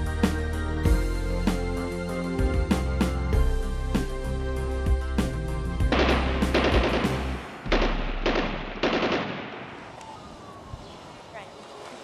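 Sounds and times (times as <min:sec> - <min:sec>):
music: 0:00.0 - 0:08.2
gunshots with ringing tail: 0:05.9 - 0:09.9.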